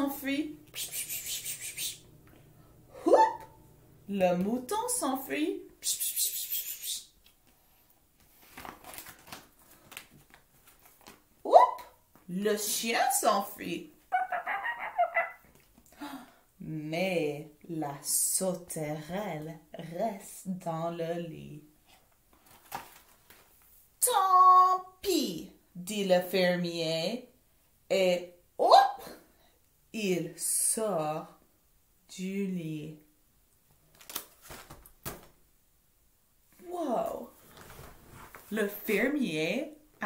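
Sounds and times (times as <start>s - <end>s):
woman imitating dog yelps: 3.0s - 3.5s, 14.1s - 15.5s.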